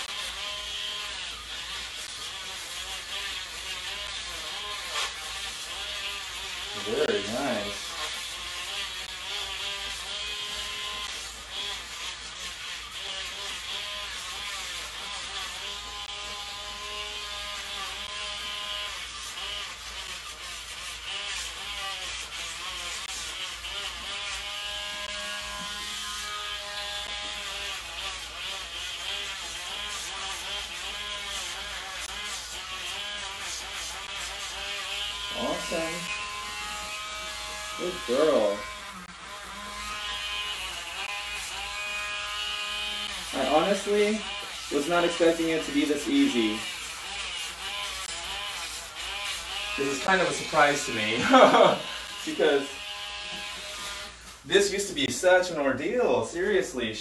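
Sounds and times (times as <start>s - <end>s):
electric nail grinder whining: 0.0s - 55.6s.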